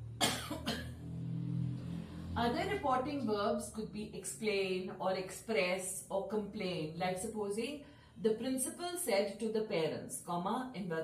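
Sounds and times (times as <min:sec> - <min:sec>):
woman coughing: 0:00.2 - 0:00.9.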